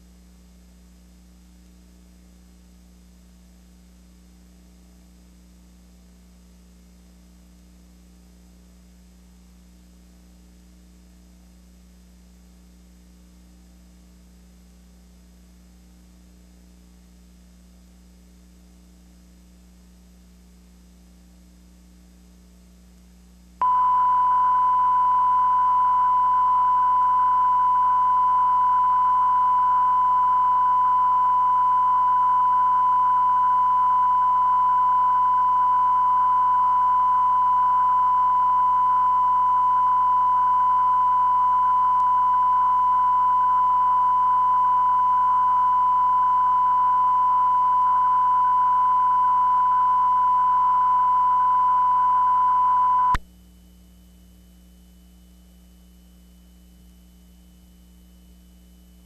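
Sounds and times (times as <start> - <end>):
faint tape hiss: 23.0 - 53.2
steady test tone: 23.6 - 53.2.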